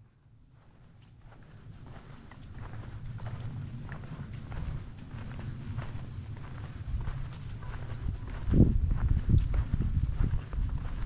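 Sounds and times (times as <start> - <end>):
footsteps on a path: 0.0 - 11.0
steady low rumble: 0.0 - 11.0.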